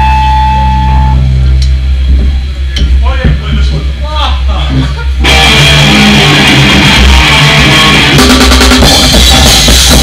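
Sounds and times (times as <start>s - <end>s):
higher ringing tone: 0.0s - 1.6s
electric guitar and bass chord: 0.0s - 3.0s, 4.5s - 10.0s
low rumble: 0.0s - 9.5s.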